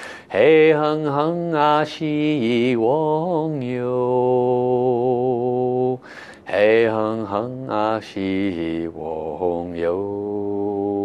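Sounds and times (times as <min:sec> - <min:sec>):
man chanting a mantra: 0:00.3 - 0:11.0.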